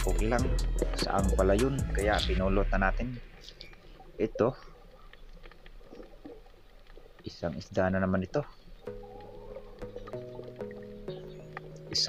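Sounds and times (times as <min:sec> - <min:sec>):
low underwater hum: 0:00.4 - 0:07.3, 0:08.5 - 0:11.9
faint clicks and ticks: 0:03.4 - 0:12.0.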